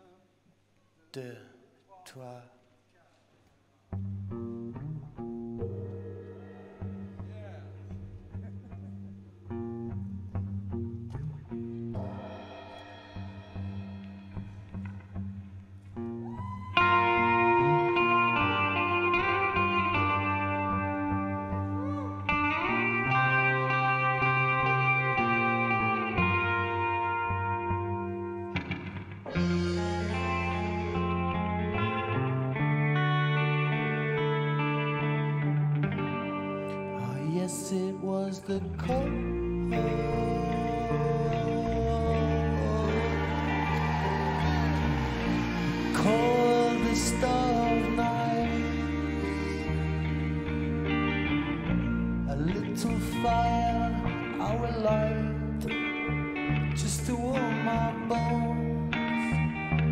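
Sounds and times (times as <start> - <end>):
bass guitar: 3.9 - 59.9
electric guitar: 4.0 - 59.9
live band playing: 11.9 - 15.2, 29.3 - 35.3, 39.6 - 54.4.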